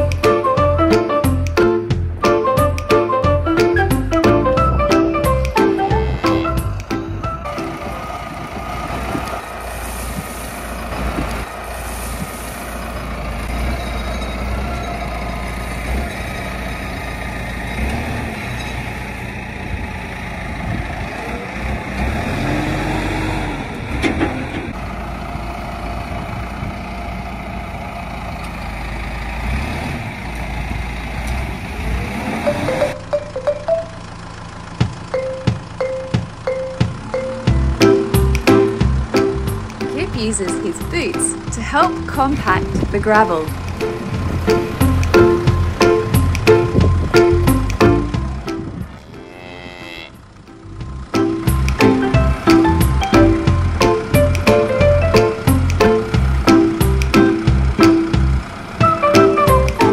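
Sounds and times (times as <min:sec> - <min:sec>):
background music: 0:00.0 - 0:08.0, 0:32.5 - 0:34.1, 0:35.1 - 0:48.8, 0:50.5 - 0:59.9
tractor engine running: 0:00.0 - 0:59.9.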